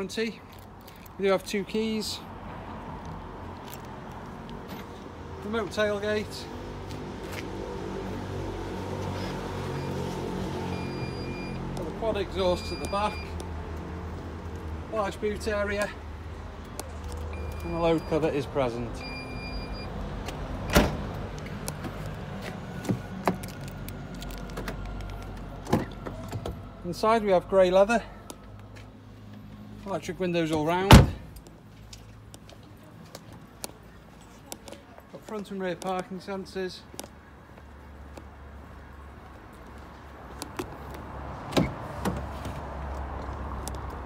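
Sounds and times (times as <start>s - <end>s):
car door latch clunk: 30.9s - 31.3s
car door thump: 30.9s - 31.3s.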